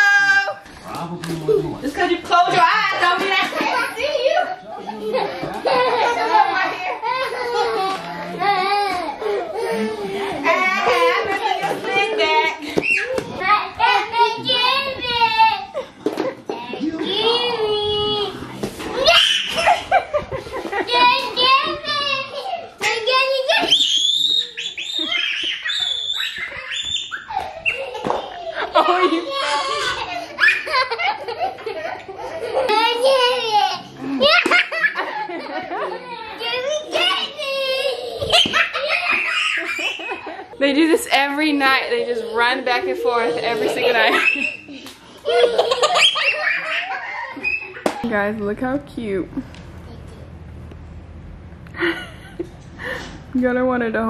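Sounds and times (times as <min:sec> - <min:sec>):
room noise: 0:00.0 - 0:54.0
toddler squealing: 0:23.6 - 0:28.4, 0:45.8 - 0:47.8.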